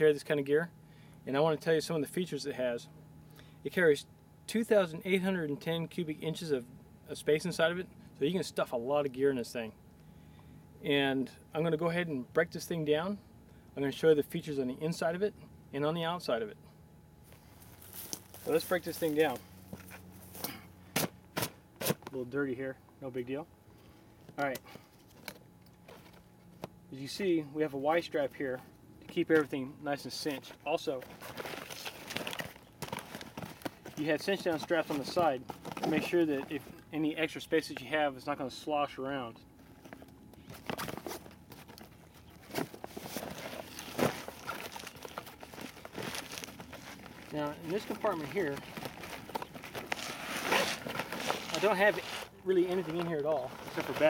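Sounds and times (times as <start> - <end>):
hand scuffing nylon backpack: 17.3 - 22.0, 30.3 - 36.7, 42.2 - 54.0.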